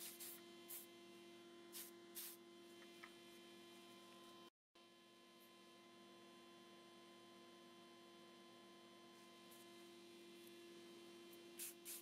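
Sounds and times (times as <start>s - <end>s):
spray-paint can hissing: 0.0s - 0.9s, 1.7s - 2.4s, 11.6s - 12.0s.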